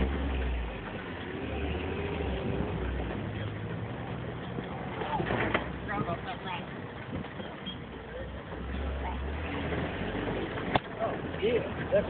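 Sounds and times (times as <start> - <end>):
vehicle engine droning: 0.0 - 12.0.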